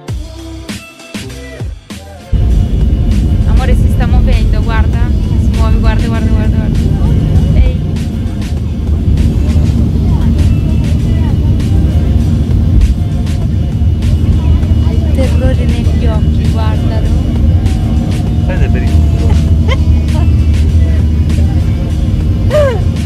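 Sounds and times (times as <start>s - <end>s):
airliner cabin engine rumble: 2.3s - 23.0s.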